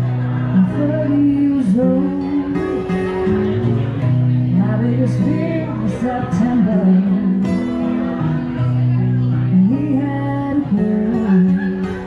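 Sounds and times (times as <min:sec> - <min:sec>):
acoustic guitar strumming: 0:00.0 - 0:12.0
woman singing: 0:00.5 - 0:02.9, 0:04.5 - 0:08.0, 0:09.5 - 0:12.0.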